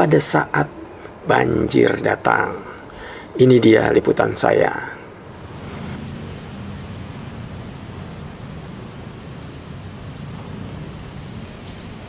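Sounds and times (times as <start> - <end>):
even hiss: 4.4 - 12.0.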